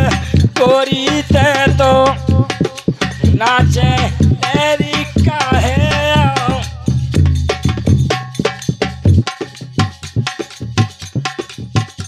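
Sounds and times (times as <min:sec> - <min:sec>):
barrel drum beating: 0:00.0 - 0:12.0.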